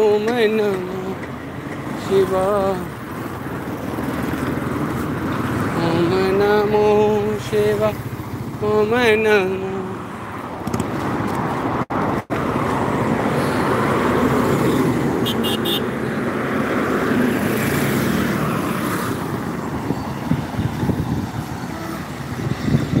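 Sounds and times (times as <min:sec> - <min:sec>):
highway traffic: 0:00.0 - 0:23.0
car passing close: 0:00.4 - 0:23.0
wind on microphone: 0:16.3 - 0:23.0.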